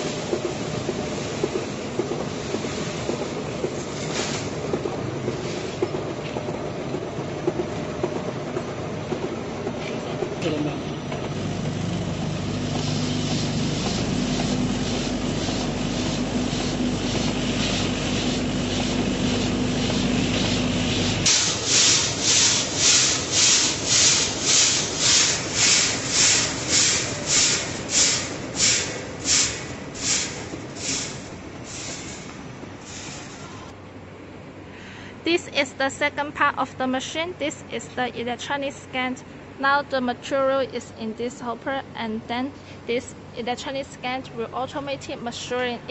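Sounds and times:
packing machine humming: 0:00.0 - 0:33.8
rice grains pouring hiss: 0:12.7 - 0:32.2.

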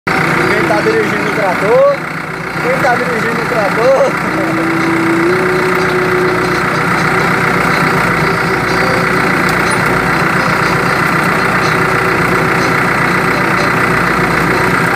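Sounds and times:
tractor diesel engine running: 0:00.1 - 0:14.9.

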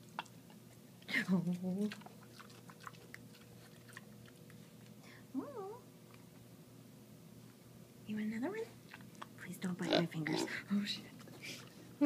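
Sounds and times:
pig chewing carrot: 0:00.0 - 0:05.0, 0:08.8 - 0:10.6.

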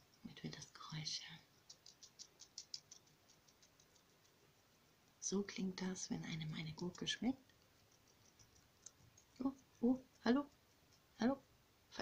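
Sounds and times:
small animal chewing: 0:01.3 - 0:11.4.

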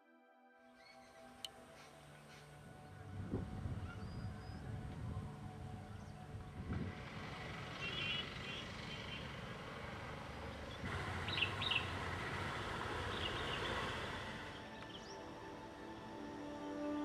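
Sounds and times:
birds chirping: 0:00.7 - 0:17.0
low rumble and hiss outdoors: 0:01.4 - 0:17.0.

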